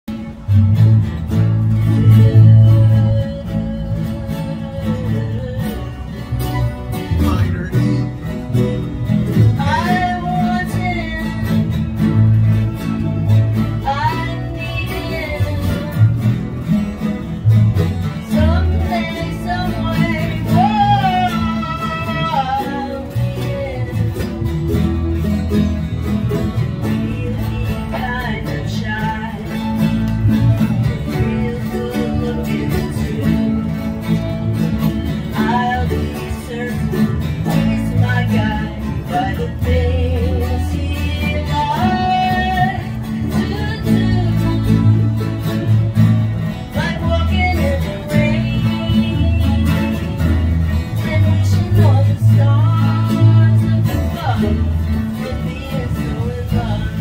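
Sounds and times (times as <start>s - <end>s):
acoustic guitar strumming: 0.1s - 57.0s
woman singing: 1.7s - 6.9s, 8.1s - 57.0s.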